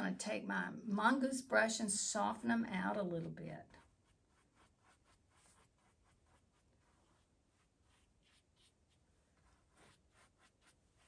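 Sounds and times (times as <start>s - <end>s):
brush strokes on canvas: 3.6s - 11.0s.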